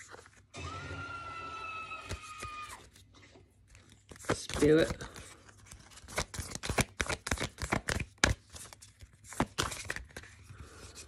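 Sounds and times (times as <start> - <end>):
cards being shuffled by hand: 1.9 - 11.0.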